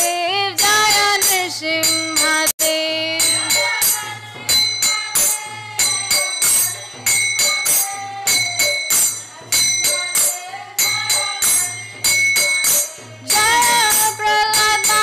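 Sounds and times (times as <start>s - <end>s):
brass hand cymbals struck: 0.0s - 15.0s.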